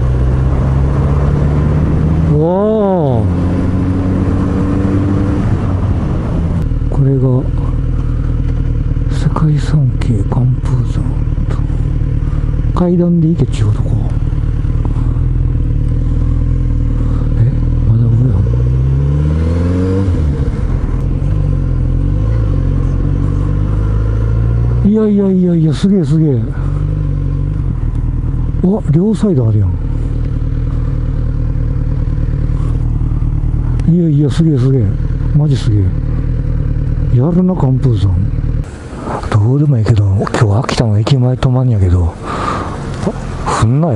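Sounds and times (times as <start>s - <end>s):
motorcycle engine while riding: 0.0s - 43.9s.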